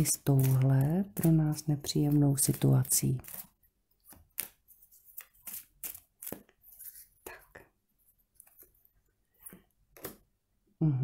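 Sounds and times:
cards snapping: 0:04.1 - 0:06.5.

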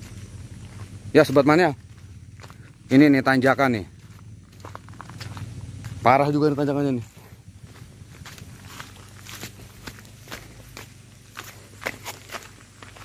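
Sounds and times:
footsteps on loose stones: 0:00.0 - 0:13.0.

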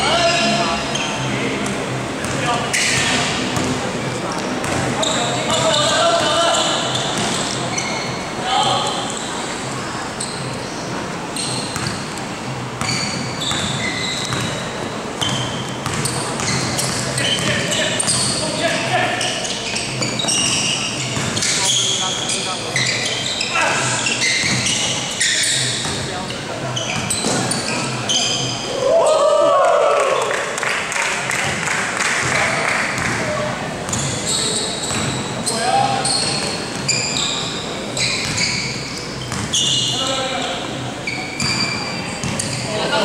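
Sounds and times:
sneakers squeaking on floor: 0:00.0 - 0:28.8, 0:32.2 - 0:43.0
basketball bouncing: 0:04.4 - 0:04.9, 0:11.7 - 0:12.0, 0:12.8 - 0:14.6, 0:15.2 - 0:18.4, 0:21.2 - 0:21.6, 0:34.9 - 0:35.2, 0:38.2 - 0:38.5, 0:39.3 - 0:39.6.

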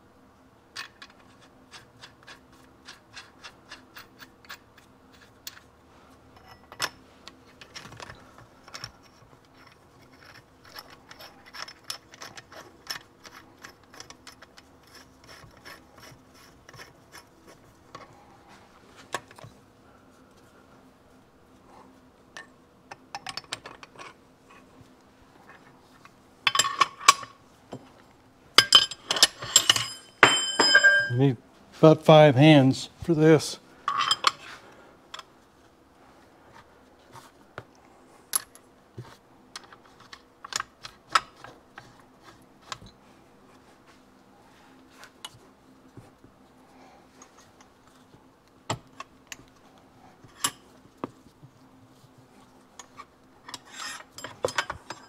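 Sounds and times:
metal clanks and rings: 0:28.6 - 0:31.2, 0:33.9 - 0:34.4, 0:53.5 - 0:55.0.

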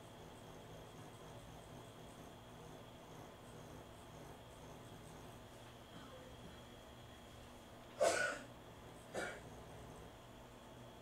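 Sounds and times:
person clearing throat: 0:08.0 - 0:08.5, 0:09.1 - 0:09.6.

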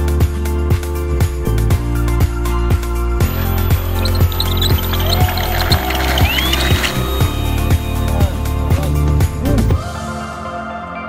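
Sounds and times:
background music with steady beat: 0:00.0 - 0:11.0
rising tone sweep: 0:03.3 - 0:08.7.

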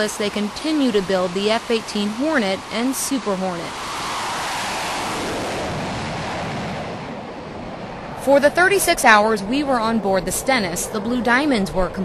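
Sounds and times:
jet engines at full power: 0:00.0 - 0:12.0.

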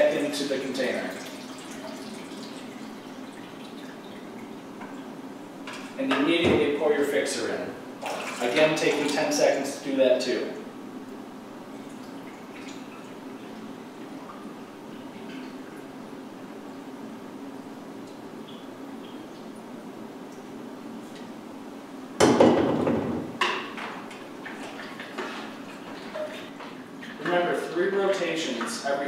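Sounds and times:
liquid trickling into tank: 0:00.8 - 0:05.2, 0:08.0 - 0:09.3, 0:11.7 - 0:15.9
loud knock: 0:22.2 - 0:23.6.

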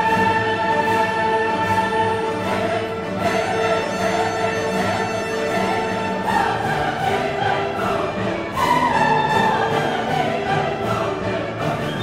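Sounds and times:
orchestral music with choir: 0:00.0 - 0:12.0.

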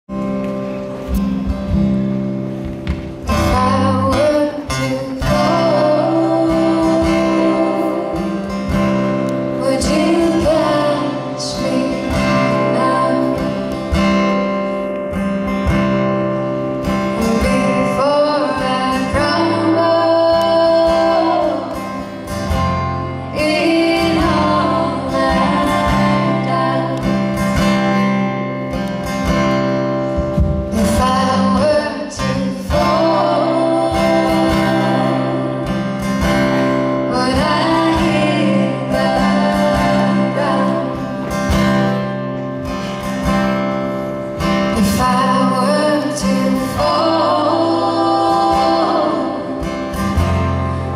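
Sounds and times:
strummed acoustic guitars: 0:00.1 - 0:50.9
women singing: 0:03.3 - 0:14.2, 0:17.0 - 0:28.0, 0:30.7 - 0:42.1, 0:44.6 - 0:50.9.

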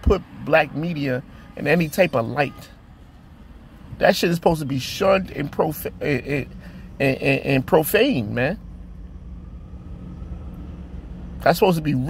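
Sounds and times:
low rumble: 0:08.5 - 0:11.4.

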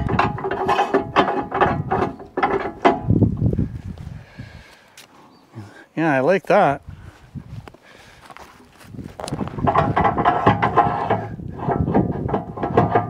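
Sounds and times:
log rolling on steel bed: 0:00.0 - 0:03.8, 0:08.6 - 0:13.0.

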